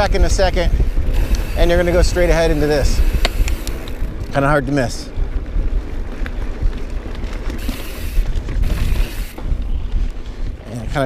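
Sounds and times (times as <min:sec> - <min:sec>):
bike rattles and clicks: 0:00.0 - 0:11.0
wind rumble on microphone: 0:00.0 - 0:11.0.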